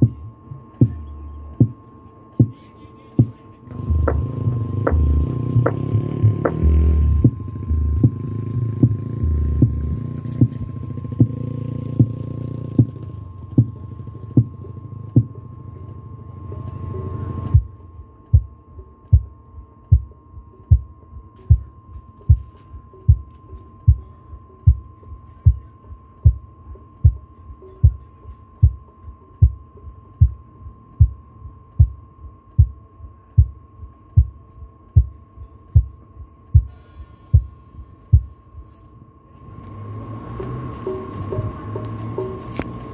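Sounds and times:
low thump through subwoofers: 0.0s - 1.8s, 3.2s - 11.4s, 17.5s - 17.7s
bass-heavy music with regular beat: 0.0s - 38.7s, 39.6s - 42.9s
faint steady high tone: 0.0s - 39.6s.

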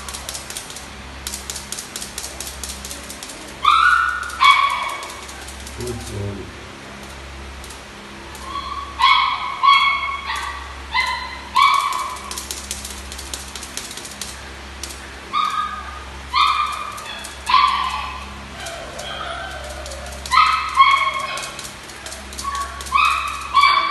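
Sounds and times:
puppies yapping: 0.0s - 6.2s, 8.1s - 23.9s.

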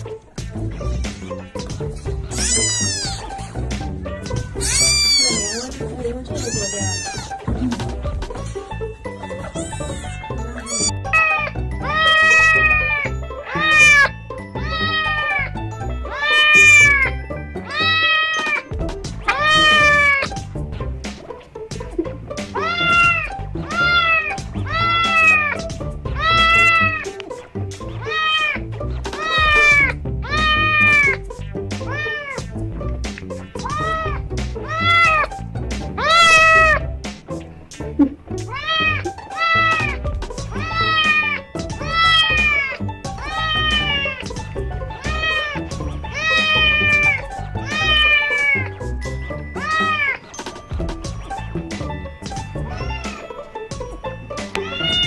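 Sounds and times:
background music: 0.0s - 55.0s
kitten meowing: 2.3s - 3.4s, 4.6s - 5.7s, 6.4s - 7.4s, 9.5s - 17.1s, 17.7s - 18.7s, 19.3s - 20.3s, 22.6s - 25.6s, 26.2s - 27.2s, 28.0s - 28.6s, 29.2s - 31.2s, 33.6s - 35.3s, 36.0s - 36.8s, 38.0s - 44.4s, 45.0s - 48.8s, 49.6s - 50.2s, 52.6s - 53.3s, 54.6s - 55.0s.

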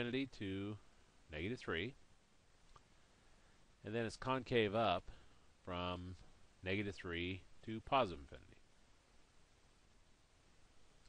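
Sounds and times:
man speaking: 0.0s - 2.0s, 3.8s - 8.6s
faint click: 2.6s - 2.9s.

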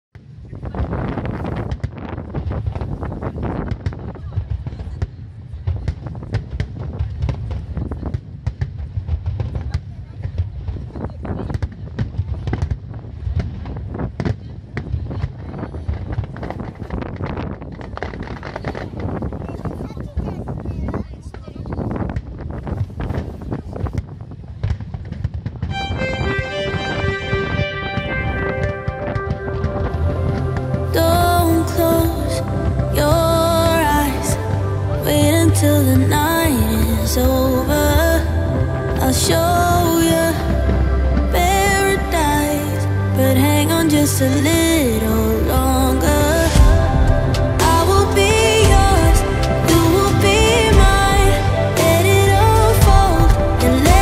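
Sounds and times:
fireworks bangs and crackles: 0.2s - 54.0s
low fireworks booms: 0.2s - 54.0s
steady low rumble: 23.6s - 54.0s
music with held notes: 25.7s - 44.4s.

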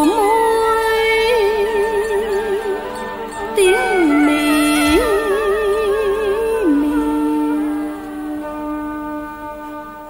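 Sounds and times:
woman singing with vibrato: 0.0s - 9.3s.

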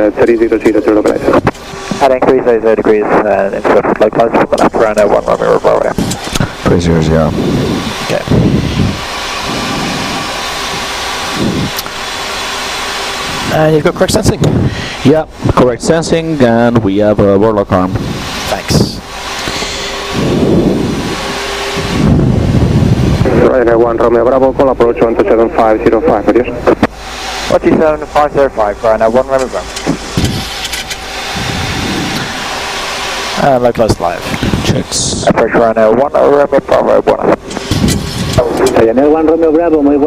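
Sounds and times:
voices on radio: 0.0s - 7.3s, 23.2s - 26.9s
low rumbling swells: 0.0s - 40.0s
steady rushing cockpit noise: 0.0s - 40.0s.

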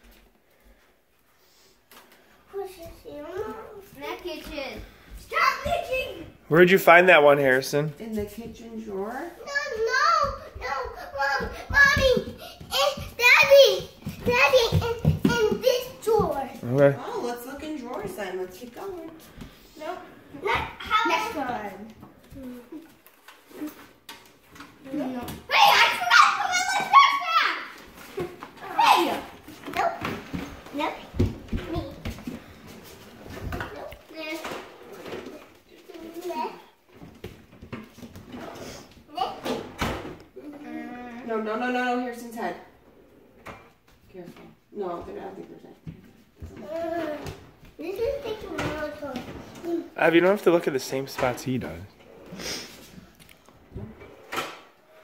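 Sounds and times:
children's exclamations: 25.5s - 27.8s.

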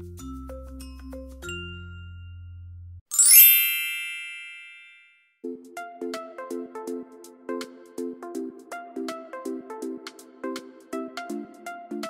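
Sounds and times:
music with mallet percussion: 0.0s - 2.4s, 3.1s - 5.1s
bright shimmering chime: 3.1s - 5.2s.

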